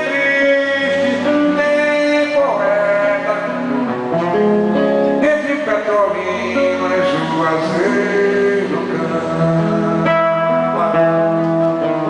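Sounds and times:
acoustic guitar plucked: 0:00.0 - 0:12.0.

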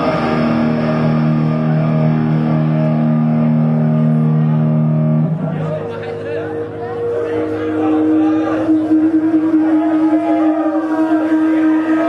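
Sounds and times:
crowd chatter: 0:00.0 - 0:12.0
steady held tone: 0:00.0 - 0:12.0.

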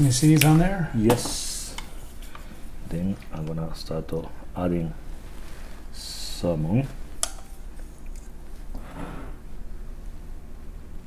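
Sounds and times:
chopsticks clicking on bowl: 0:07.2 - 0:08.2.

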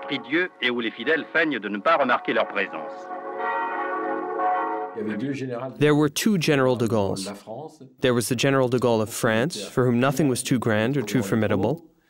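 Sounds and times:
church bells ringing: 0:01.9 - 0:05.5.

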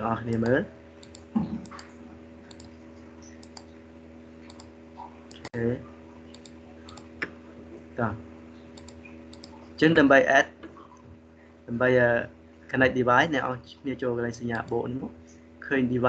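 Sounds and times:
electrical hum: 0:00.0 - 0:16.0
computer mouse clicks: 0:00.3 - 0:01.9, 0:02.5 - 0:03.8, 0:04.4 - 0:04.7, 0:05.3 - 0:05.5, 0:06.3 - 0:07.4, 0:08.6 - 0:09.6
keyboard clicks: 0:00.3 - 0:01.9, 0:02.5 - 0:03.7, 0:04.4 - 0:04.7, 0:05.3 - 0:05.6, 0:06.3 - 0:07.3, 0:08.7 - 0:09.6.

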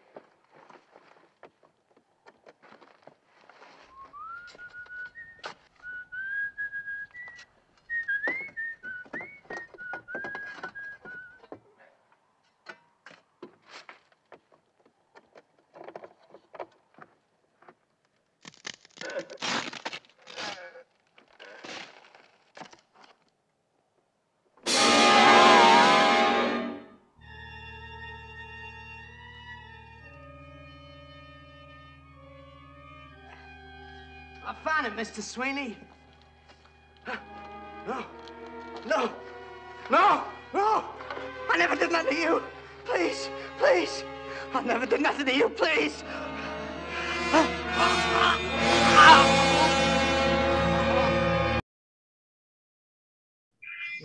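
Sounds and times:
knocks and scrapes of digging: 0:00.0 - 0:04.5, 0:12.4 - 0:17.8, 0:18.4 - 0:23.3
man whistling a tune: 0:03.9 - 0:11.5
loud blast: 0:24.7 - 0:26.9
eerie music chord: 0:24.7 - 0:27.0, 0:45.8 - 0:51.5.

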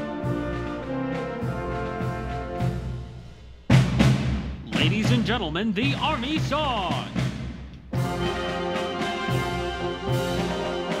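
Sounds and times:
brass band chord: 0:00.0 - 0:03.5, 0:07.9 - 0:11.0
loud drum strike: 0:03.7 - 0:07.7.

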